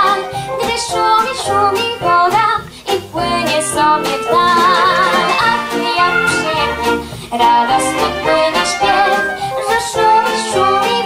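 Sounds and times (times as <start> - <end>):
girl singing into a microphone: 0.0 - 11.0
singer breath: 0.2 - 0.6, 6.3 - 7.4, 9.2 - 9.6
small orchestra with violins: 2.9 - 11.0.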